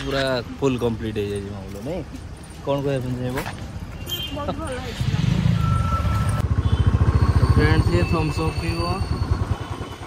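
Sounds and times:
motorcycle engine running: 0:05.8 - 0:10.0.

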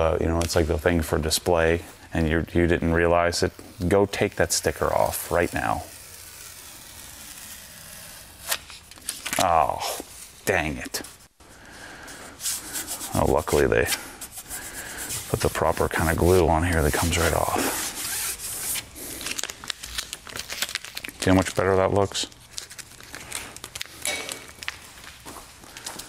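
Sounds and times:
faint room tone hiss: 0:00.0 - 0:26.0
sticker ripping off: 0:03.8 - 0:10.1
plastic sticker crinkling: 0:03.8 - 0:10.4, 0:14.4 - 0:26.0.

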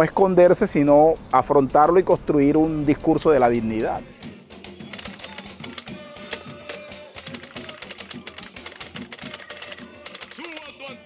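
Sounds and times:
soft background music: 0:00.0 - 0:11.0
typewriter key clacks: 0:04.9 - 0:10.7.

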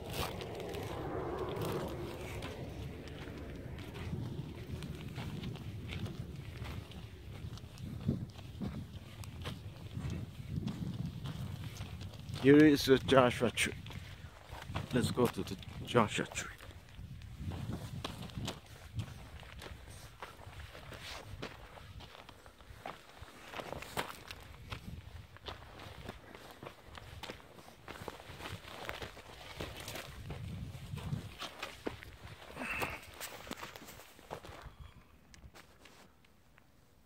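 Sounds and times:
microphone handling rumble: 0:00.0 - 0:12.4
footsteps on stony ground: 0:00.0 - 0:36.2.

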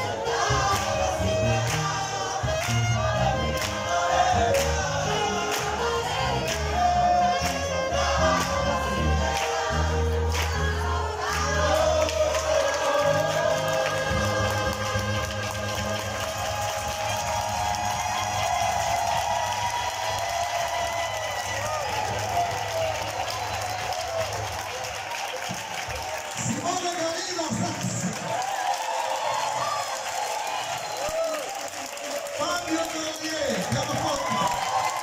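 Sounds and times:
mixed choir singing: 0:00.0 - 0:22.2
keyboard: 0:00.0 - 0:25.0
saxophone: 0:00.0 - 0:26.4.

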